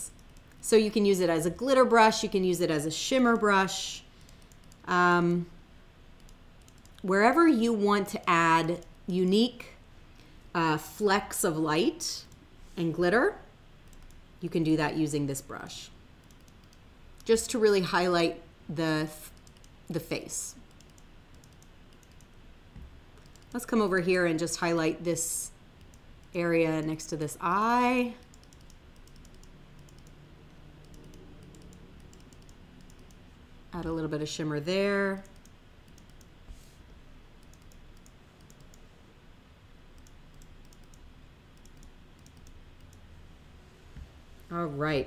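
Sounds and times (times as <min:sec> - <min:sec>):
low steady background noise: 0:00.0 - 0:45.0
computer keyboard clicks: 0:06.2 - 0:07.0, 0:16.2 - 0:17.3, 0:19.3 - 0:19.8, 0:20.7 - 0:22.3, 0:23.2 - 0:23.6, 0:28.2 - 0:30.2, 0:30.8 - 0:33.2, 0:40.0 - 0:43.0.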